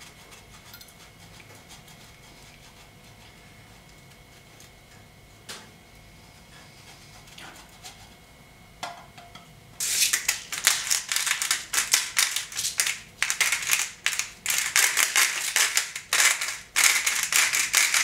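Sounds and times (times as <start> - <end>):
pepper mill grinding: 9.8 - 18.0.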